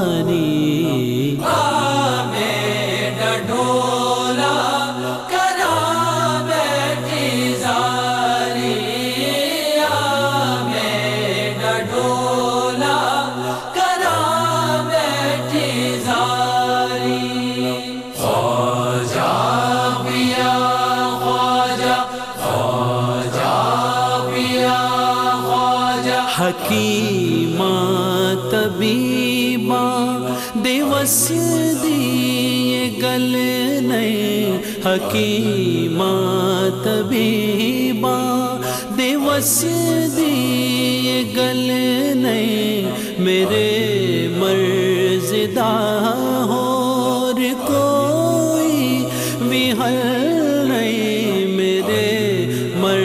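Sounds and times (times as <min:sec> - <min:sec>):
person singing devotional song: 0:00.0 - 0:53.0.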